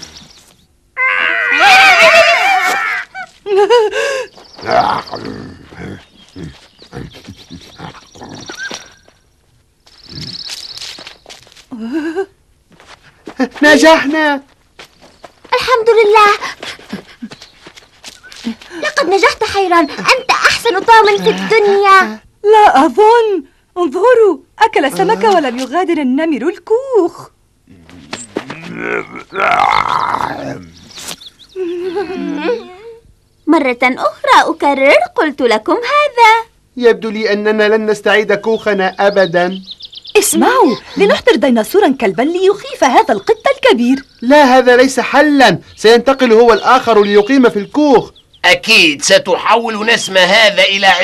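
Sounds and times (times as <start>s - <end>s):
cartoon tiger snarls and grunts: 27.7s - 30.8s.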